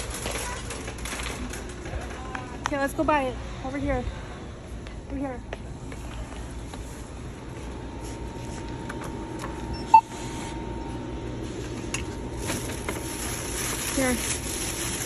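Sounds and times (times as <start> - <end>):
low store hum: 0.0 - 15.0
barcode scanner beep: 9.7 - 10.2.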